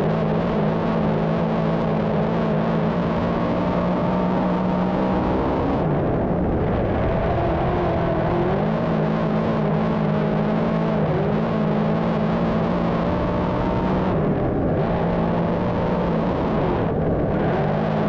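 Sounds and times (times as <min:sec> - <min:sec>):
race car engine running: 0:00.0 - 0:18.0.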